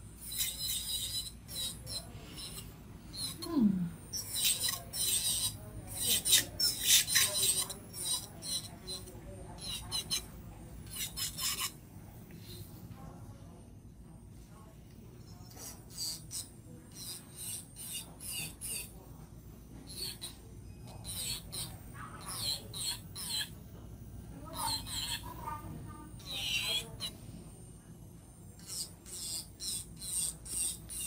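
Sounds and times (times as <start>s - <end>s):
electric nail drill grinding: 0.2s - 3.5s, 4.1s - 10.2s, 28.6s - 31.0s.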